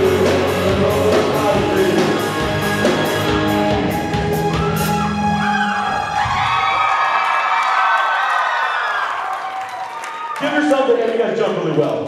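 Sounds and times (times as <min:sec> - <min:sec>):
live rock band: 0:00.0 - 0:06.2
drumming: 0:00.0 - 0:06.7
crowd cheering and whooping: 0:03.9 - 0:10.6.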